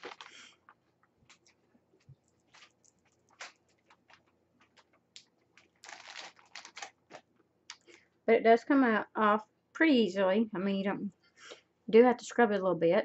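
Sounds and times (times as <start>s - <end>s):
small clicks and rustles: 0.0s - 8.1s.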